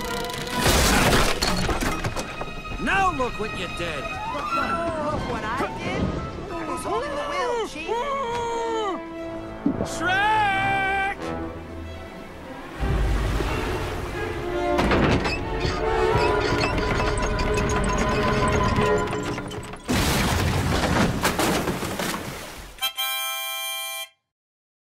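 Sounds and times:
dramatic orchestral music: 0.3s - 19.9s.

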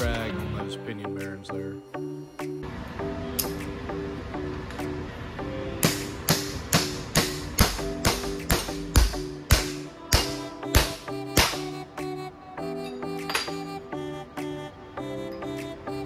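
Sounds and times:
background music: 0.0s - 16.0s
hammer striking steel: 5.8s - 11.7s.

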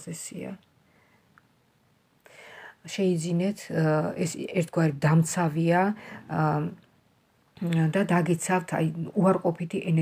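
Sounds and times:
person speaking: 7.6s - 10.0s.

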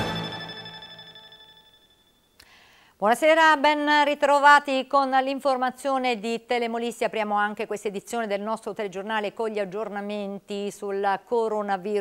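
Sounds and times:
theme music final chord: 0.0s - 2.1s.

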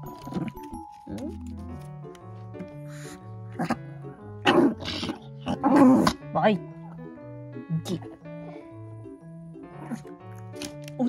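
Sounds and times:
background music: 0.0s - 11.0s
small dog growl-barking: 4.4s - 6.2s.

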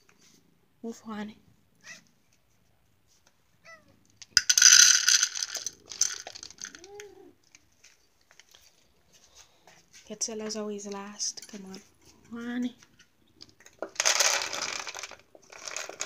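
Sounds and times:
cat meow: 1.8s - 2.1s, 3.6s - 4.0s
kibble rattling into bowl: 4.2s - 7.0s, 13.4s - 16.0s.

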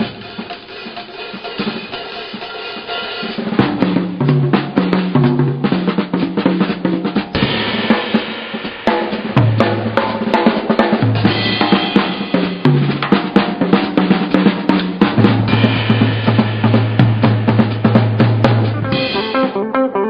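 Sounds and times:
ringing cymbals: 0.0s - 3.4s, 11.2s - 13.0s, 15.5s - 17.9s
jazz drum kits playing: 0.0s - 20.0s.

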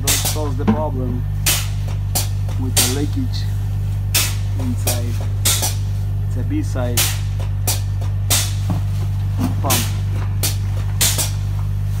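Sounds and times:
machine humming: 0.0s - 7.7s.

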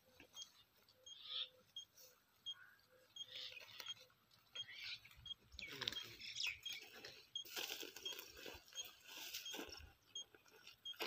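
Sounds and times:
footsteps on dry grass: 5.7s - 11.0s.

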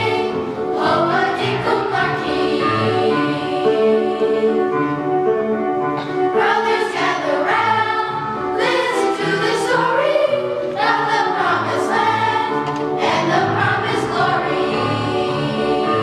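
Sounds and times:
children's choir singing: 0.0s - 5.3s, 6.0s - 16.0s.

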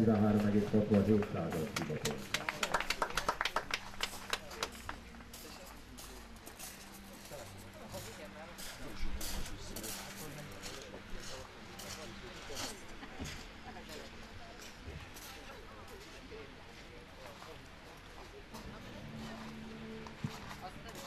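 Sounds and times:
spectators clapping: 0.0s - 5.5s
faint murmuring voices: 0.0s - 21.0s.

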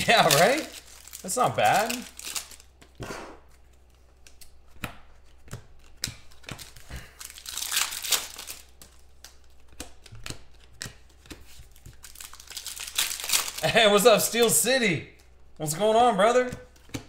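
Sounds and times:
plastic wrapper crinkling and tearing: 0.0s - 2.8s, 5.9s - 8.9s, 11.7s - 14.4s
cards clicking and sliding: 8.0s - 12.1s.

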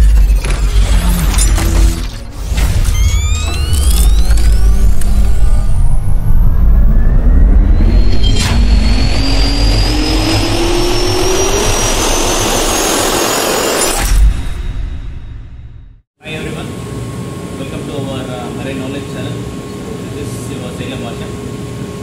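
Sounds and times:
deep rumble: 0.0s - 16.0s
sharp hit: 0.0s - 16.0s
jet turbine whine rising: 0.0s - 22.0s.

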